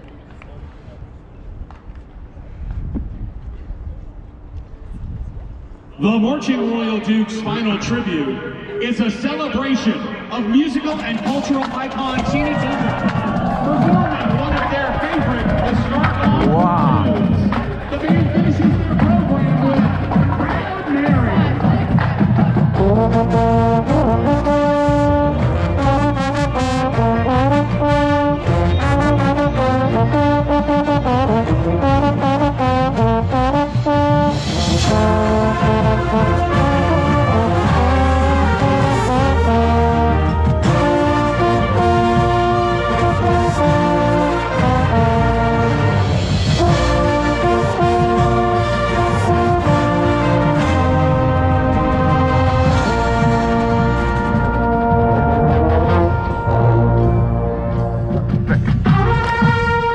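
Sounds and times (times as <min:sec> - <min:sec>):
marching band brass playing: 0:06.0 - 0:59.9
steady drum beat: 0:10.9 - 0:56.5
trombone playing: 0:22.7 - 0:59.9.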